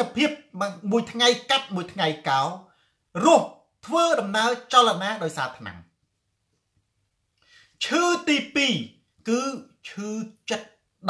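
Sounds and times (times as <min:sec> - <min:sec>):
man talking: 0:00.0 - 0:05.9, 0:07.8 - 0:10.8.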